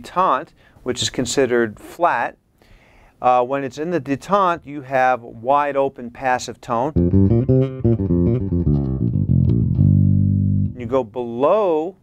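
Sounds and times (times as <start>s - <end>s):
electric bass plucked notes: 7.0s - 11.0s.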